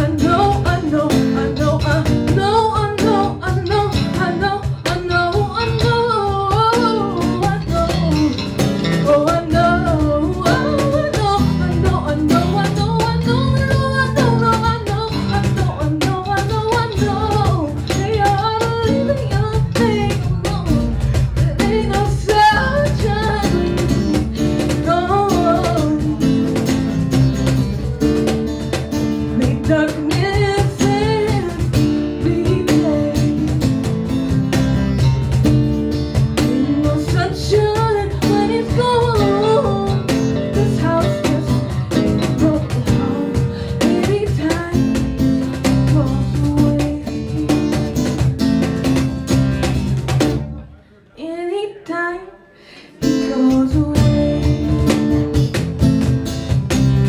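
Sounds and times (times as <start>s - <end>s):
woman singing: 0.0s - 27.1s, 29.0s - 34.4s, 36.2s - 49.1s, 51.2s - 56.2s
strummed acoustic guitar: 0.0s - 50.6s, 53.0s - 57.0s
cajon: 0.0s - 50.7s, 53.0s - 57.0s
electric bass: 0.0s - 50.7s, 53.8s - 57.0s.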